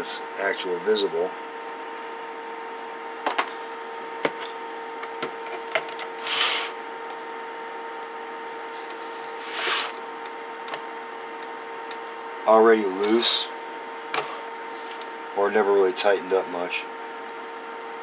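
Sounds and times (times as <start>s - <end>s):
metal case scraping: 9.0s - 10.0s.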